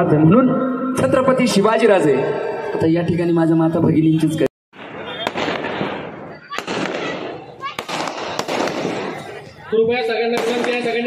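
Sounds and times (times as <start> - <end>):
loud sharp bangs: 4.7 - 9.5, 10.2 - 11.0
crowd voices: 4.8 - 11.0
firecrackers crackling: 4.8 - 11.0.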